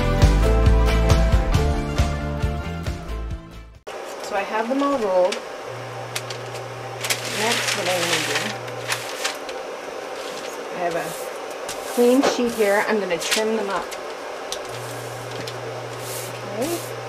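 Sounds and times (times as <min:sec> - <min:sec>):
candles and paper rustling: 0:06.1 - 0:17.0.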